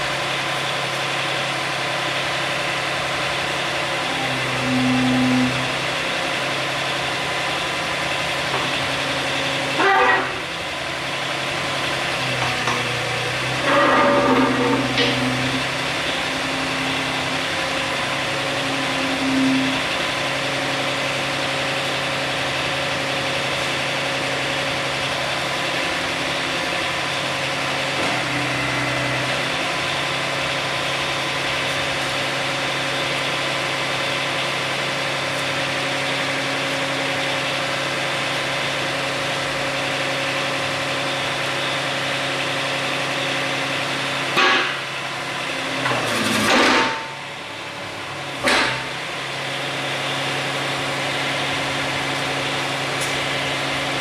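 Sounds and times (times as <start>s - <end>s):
excavator engine idling: 0.0s - 54.0s.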